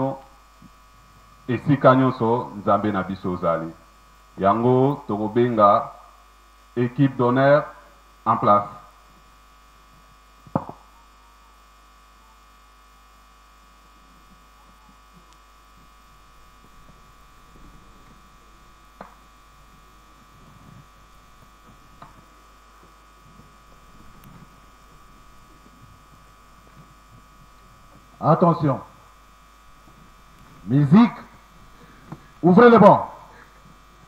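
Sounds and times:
electrical hum: 0.0s - 34.0s.

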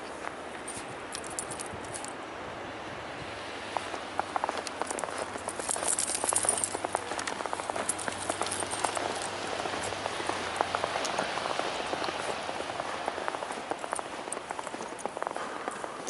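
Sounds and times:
footsteps crunching in snow: 3.6s - 16.0s.

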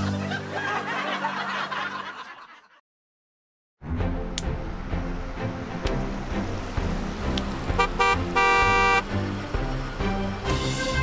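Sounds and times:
vehicle horn honking: 7.7s - 9.1s.

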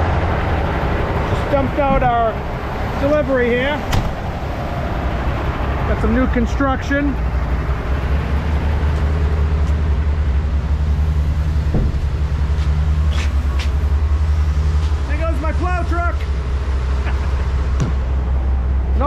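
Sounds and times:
diesel engine running steadily: 0.0s - 19.0s
man's voice: 1.3s - 3.9s, 15.1s - 16.2s.

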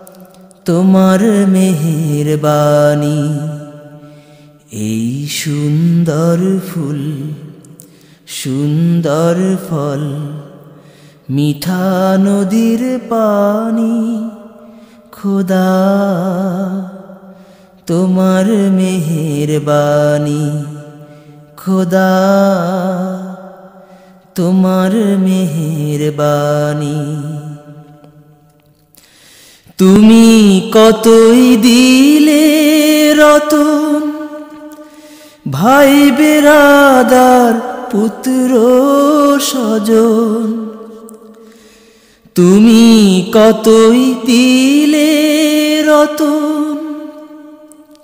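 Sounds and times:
person singing: 29.7s - 41.5s, 42.3s - 48.0s.

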